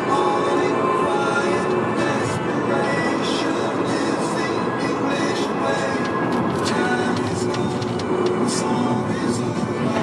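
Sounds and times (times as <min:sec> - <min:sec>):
car road noise from inside: 0:00.0 - 0:10.0
music playing: 0:00.0 - 0:10.0.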